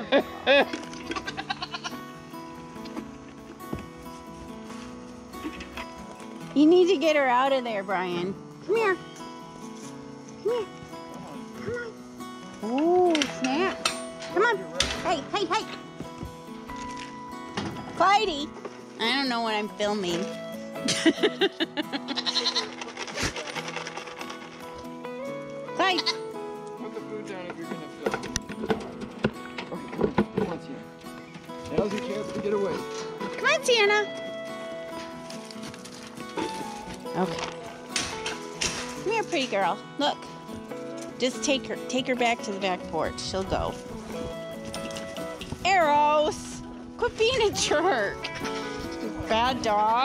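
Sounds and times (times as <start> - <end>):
background music: 0.0 - 50.0
goat bleating: 1.0 - 2.1, 21.9 - 22.9, 25.8 - 26.4.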